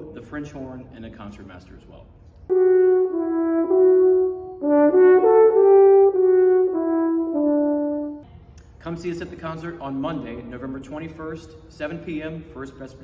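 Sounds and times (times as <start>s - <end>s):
french horn melody: 2.5s - 8.2s.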